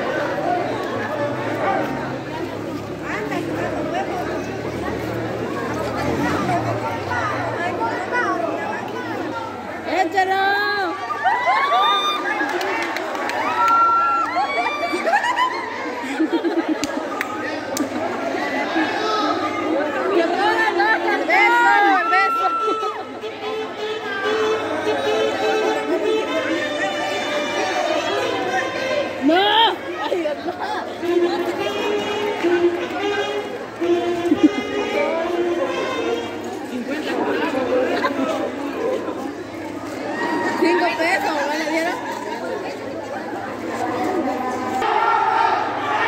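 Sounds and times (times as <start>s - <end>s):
people talking and calling out: 0.0s - 46.0s.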